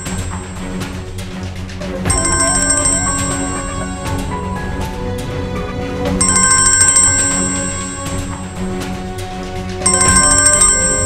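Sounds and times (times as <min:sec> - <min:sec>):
background score music: 0:00.0 - 0:11.0.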